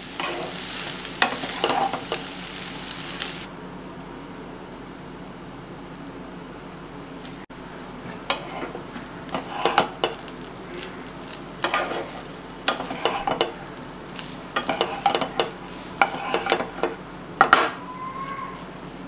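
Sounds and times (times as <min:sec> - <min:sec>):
spatula scraping frying pan: 0:00.0 - 0:03.5, 0:08.1 - 0:18.7
steady background hiss: 0:00.0 - 0:19.0.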